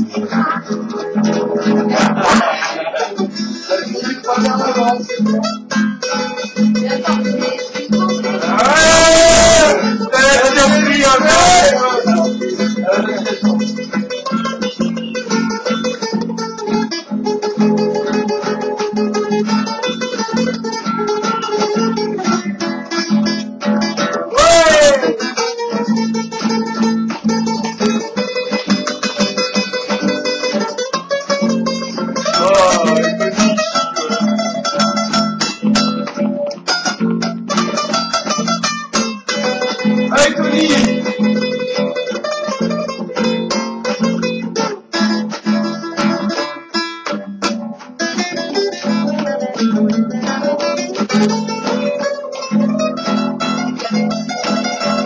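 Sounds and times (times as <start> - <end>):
acoustic guitars strumming: 0.0 - 55.0
person shouting: 8.4 - 13.3, 24.2 - 25.2, 32.2 - 33.5, 40.1 - 41.0.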